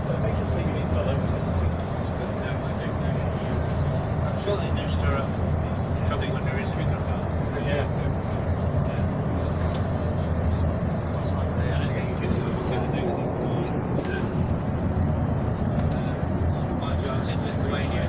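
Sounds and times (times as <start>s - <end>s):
coach engine and road rumble: 0.0s - 18.0s
indistinct passenger chatter: 0.0s - 18.0s.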